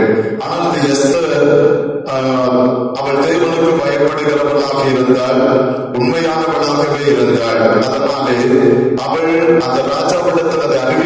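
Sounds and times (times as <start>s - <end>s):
man preaching into microphone: 0.0s - 11.0s.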